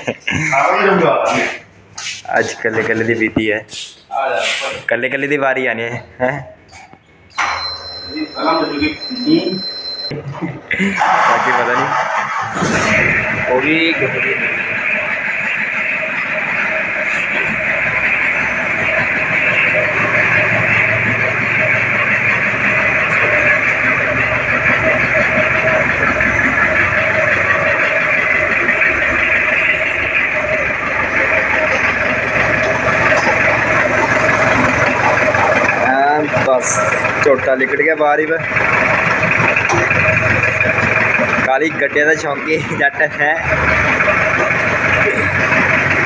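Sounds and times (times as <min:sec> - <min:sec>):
jeep engine running steadily: 0:12.9 - 0:46.0.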